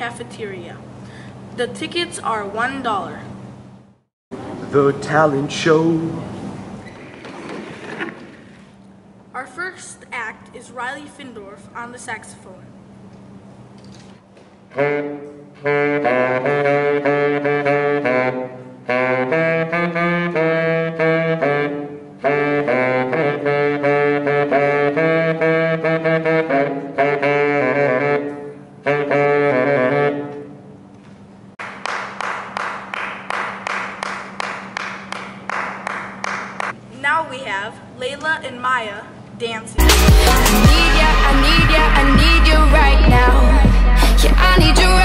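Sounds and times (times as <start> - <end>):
solo saxophone melody: 14.7 - 30.8, 39.8 - 45.0
pop music beat: 39.8 - 45.0.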